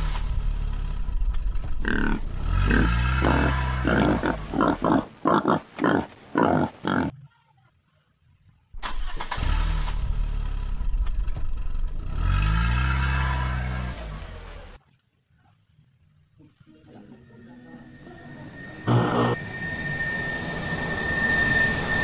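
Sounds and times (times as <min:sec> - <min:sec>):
car engine revving: 0:00.0 - 0:04.6, 0:18.8 - 0:19.4.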